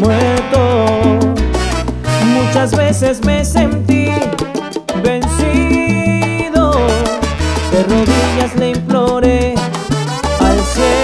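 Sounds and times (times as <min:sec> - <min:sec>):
salsa band playing: 0:00.0 - 0:11.0.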